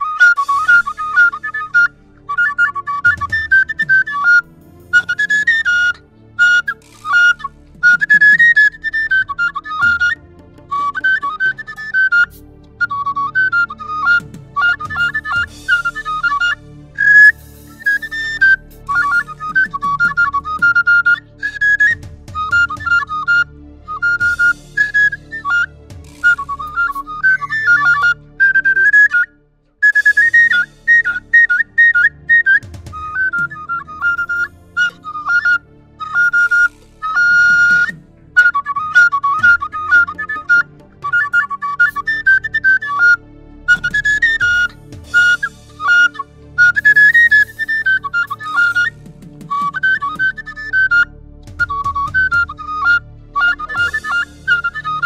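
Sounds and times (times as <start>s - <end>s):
flute playing trilling melody: 0.0s - 55.0s.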